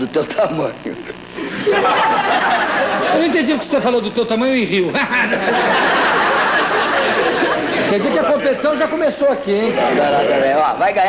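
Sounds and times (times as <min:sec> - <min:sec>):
chatter of mixed voices: 0:05.6 - 0:10.8.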